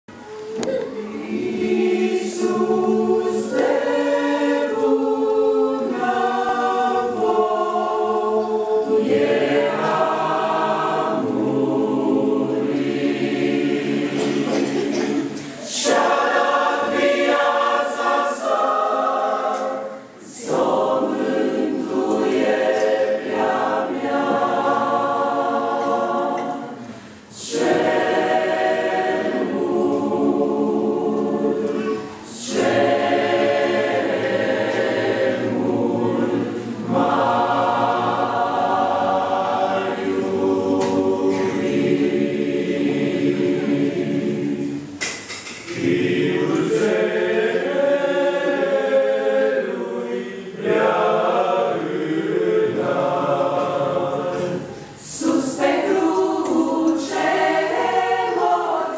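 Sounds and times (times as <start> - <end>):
choir singing a cappella: 0.1 - 58.9.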